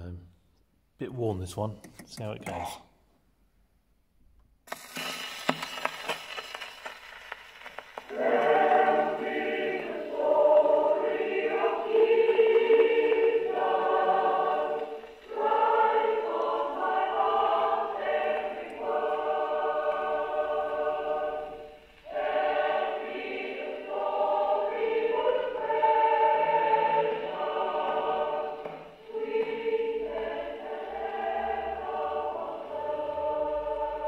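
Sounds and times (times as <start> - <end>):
record hiss and crackle: 4.2 - 34.0
choir singing a hymn: 8.1 - 34.0.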